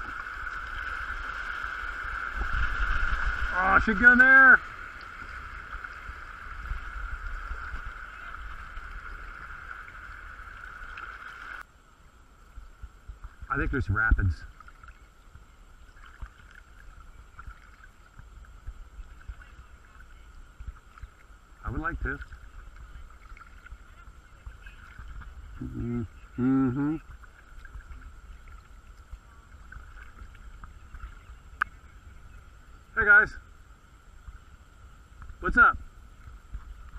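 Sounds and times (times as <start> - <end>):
low rumble: 0.0 - 15.9
creek water rushing: 0.0 - 36.9.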